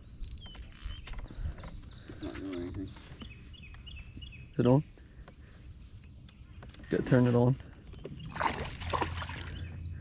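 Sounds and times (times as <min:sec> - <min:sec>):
water sloshing against boat: 0:08.0 - 0:09.8
splash in water: 0:08.3 - 0:09.6.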